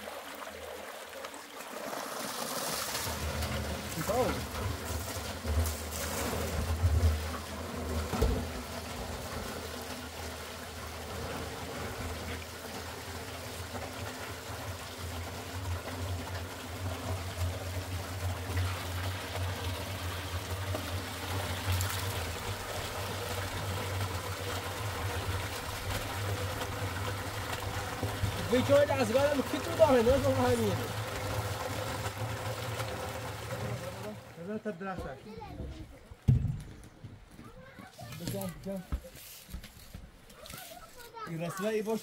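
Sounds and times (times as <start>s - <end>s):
water churning and splashing: 0.0s - 36.5s
pump humming: 0.0s - 36.9s.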